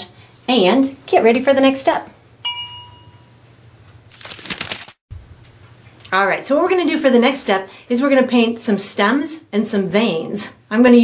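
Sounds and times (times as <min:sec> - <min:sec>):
paper towel crinkling: 0:04.1 - 0:05.0.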